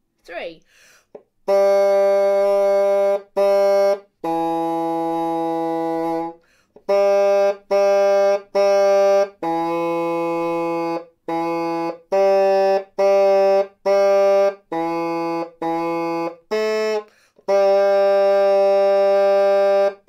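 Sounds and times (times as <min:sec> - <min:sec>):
small bassoon melody: 0:01.4 - 0:20.0.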